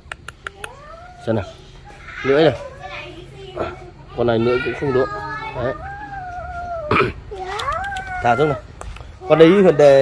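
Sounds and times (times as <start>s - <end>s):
puppy whining: 4.5s - 10.0s
puppy yelping: 4.5s - 10.0s.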